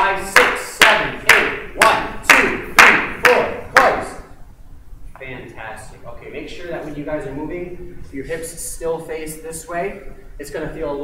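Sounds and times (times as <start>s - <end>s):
hand claps: 0.3s - 4.0s.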